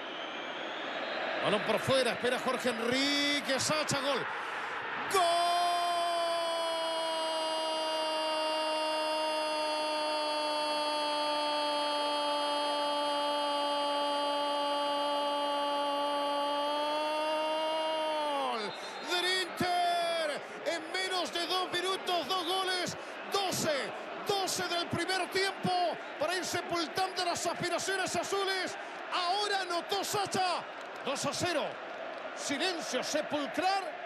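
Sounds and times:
fast excited commentary: 1.4 - 4.3.

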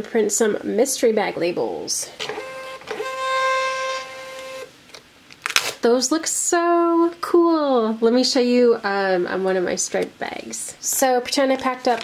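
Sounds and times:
label printer motor whine: 2.3 - 4.7.

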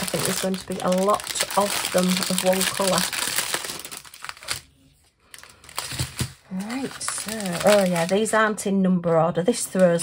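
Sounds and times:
plastic bags rustling: 0.0 - 8.6.

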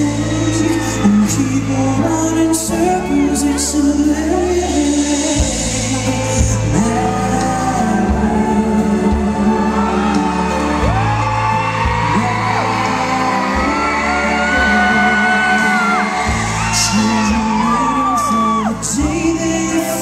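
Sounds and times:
fans whooping and yelling: 0.0 - 3.7, 9.3 - 20.0
band accompaniment: 0.0 - 20.0
man singing a slow ballad: 0.0 - 20.0.

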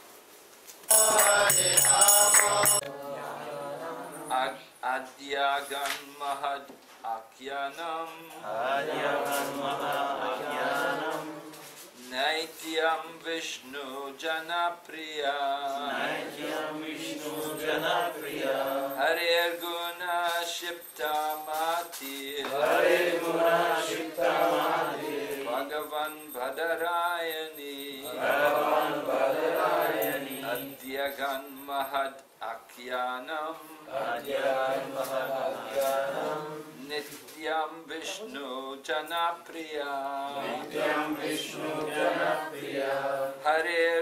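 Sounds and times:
voices chanting melodically: 0.9 - 4.6, 8.4 - 11.8, 15.7 - 19.6, 22.4 - 31.8, 40.2 - 43.5.

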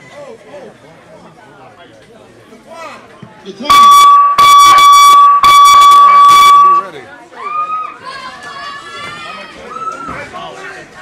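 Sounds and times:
boxing timer tone: 3.7 - 6.9.

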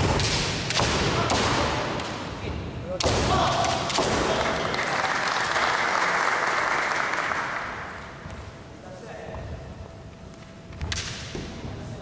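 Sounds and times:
bamboo sword strike cracking: 0.0 - 2.2
loud hall noise: 0.0 - 12.0.

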